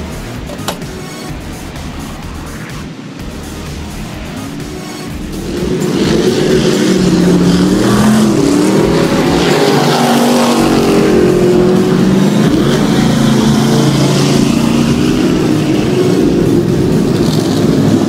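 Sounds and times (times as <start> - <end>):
race car engines accelerating: 0.0 - 18.0.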